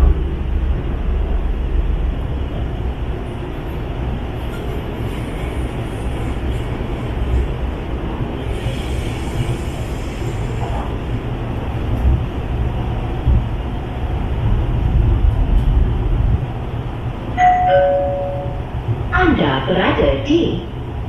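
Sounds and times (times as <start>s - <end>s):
metro train rumble: 0.0s - 21.0s
two-note falling chime: 17.4s - 18.6s.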